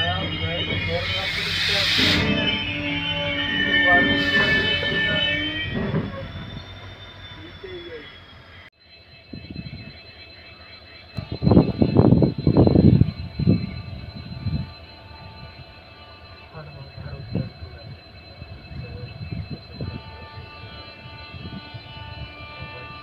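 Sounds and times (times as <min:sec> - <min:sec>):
train wheels clattering: 0:00.0 - 0:07.8
train rolling on rails: 0:00.0 - 0:23.0.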